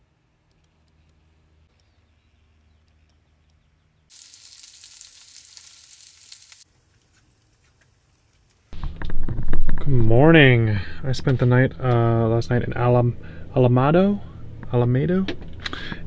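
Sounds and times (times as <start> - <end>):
food sizzling in skillet: 4.1 - 8.8.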